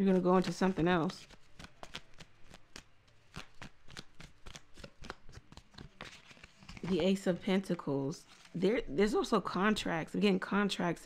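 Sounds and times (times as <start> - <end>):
cards being shuffled: 0.0 - 7.4.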